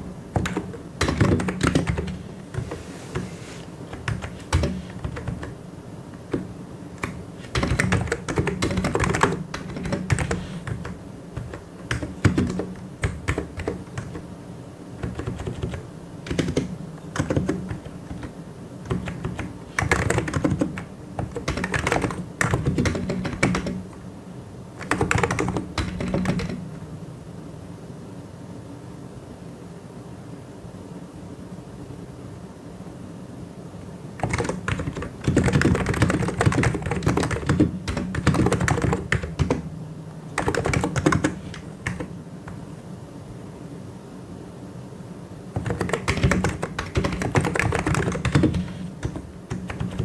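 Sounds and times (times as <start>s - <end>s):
mechanical keyboard typing: 0.0s - 3.2s, 3.9s - 5.6s, 6.2s - 14.3s, 15.0s - 24.0s, 24.8s - 26.6s, 34.2s - 39.7s, 40.4s - 42.6s, 45.6s - 50.0s
faint steady hum: 0.0s - 50.0s.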